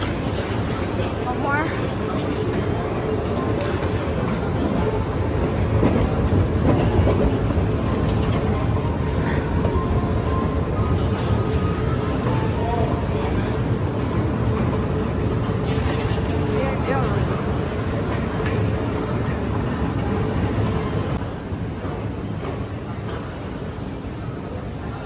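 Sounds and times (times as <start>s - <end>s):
voices murmuring: 0.0s - 21.2s
moving walkway rumble and rattle: 0.0s - 25.0s.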